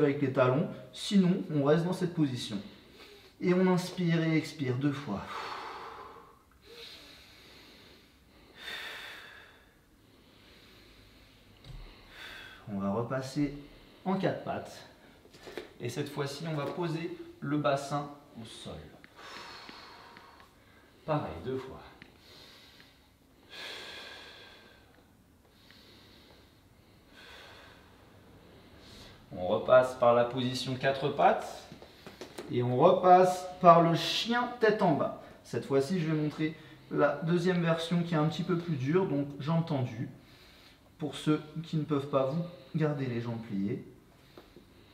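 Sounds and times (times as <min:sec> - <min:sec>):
person breathing deeply: 0:05.2 - 0:12.7, 0:19.1 - 0:21.2, 0:21.9 - 0:29.3.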